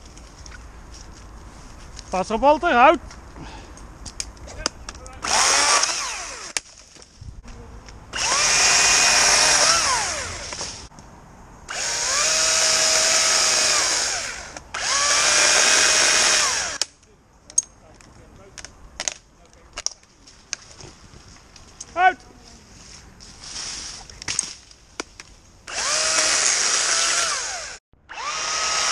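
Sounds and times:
electric chainsaw whine: 5.2 - 6.6, 8.1 - 10.6, 11.7 - 16.8, 25.7 - 28.9
chainsaw cutting branches: 5.2 - 6.7, 8.1 - 10.9, 11.7 - 16.8, 25.7 - 28.9.

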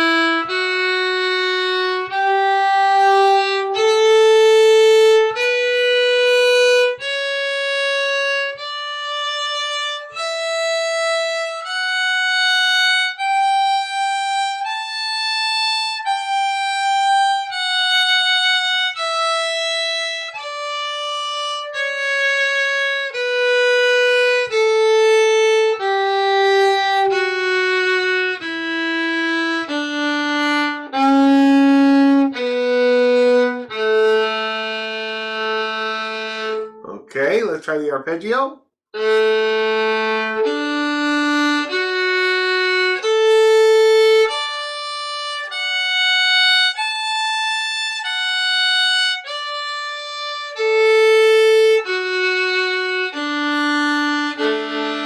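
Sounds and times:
fiddle playing slow scale: 0.0 - 37.4, 39.0 - 55.0.

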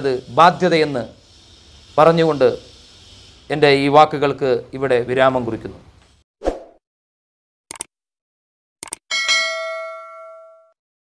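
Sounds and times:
double mouse-click: 8.8 - 9.0
notification bell ding: 9.1 - 10.8.

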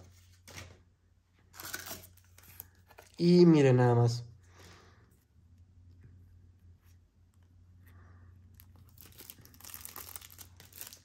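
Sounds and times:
packaging crinkling and tearing: 1.5 - 3.2, 8.5 - 11.0.

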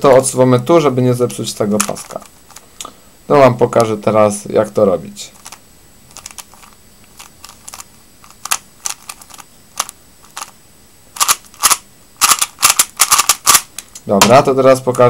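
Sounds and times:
puzzle cube clicking: 1.3 - 2.7, 5.4 - 10.6, 11.2 - 15.0.

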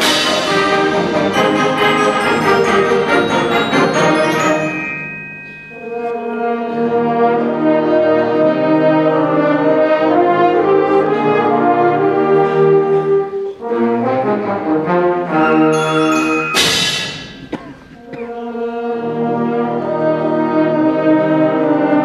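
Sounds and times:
concert band playing held chords: 0.0 - 8.1, 15.2 - 18.8.

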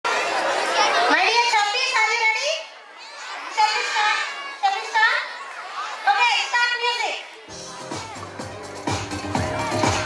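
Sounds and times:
audience chattering: 0.0 - 10.0
children's voices: 0.1 - 8.4.

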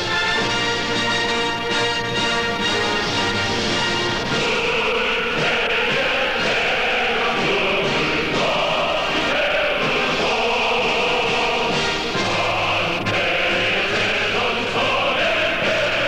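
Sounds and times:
instrumental accompaniment: 0.0 - 16.0
choir singing: 2.0 - 16.0.

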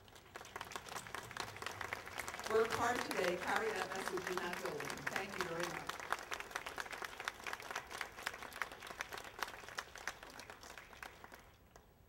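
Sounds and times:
crowd applauding: 0.0 - 11.9.

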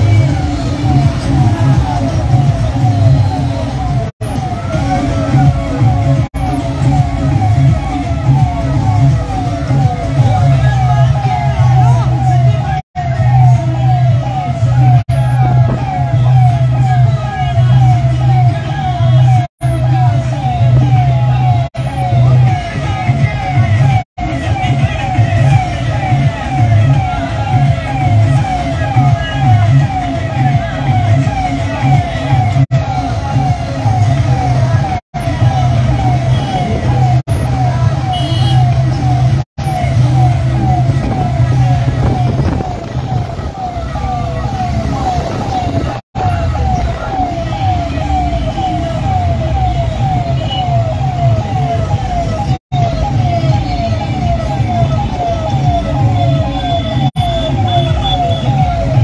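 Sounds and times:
siren horn wailing: 0.0 - 59.0.

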